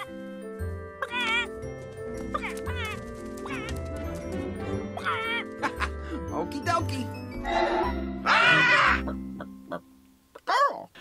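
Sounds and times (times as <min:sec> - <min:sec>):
film music with held notes: 0:00.0 - 0:11.0
cartoon bird wavering cries: 0:02.4 - 0:03.7, 0:05.0 - 0:05.5, 0:07.4 - 0:09.2.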